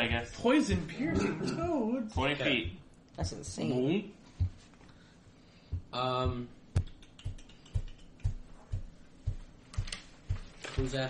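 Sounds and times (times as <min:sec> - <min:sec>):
steady low thump: 0:02.1 - 0:03.6, 0:04.4 - 0:04.7, 0:05.7 - 0:11.0
paper being handled: 0:09.8 - 0:11.0.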